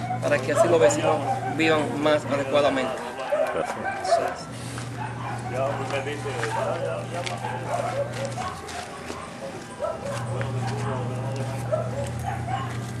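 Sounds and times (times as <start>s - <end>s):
voices in background: 0.0s - 12.7s
dog barking: 0.0s - 12.9s
steady low hum: 0.0s - 13.0s.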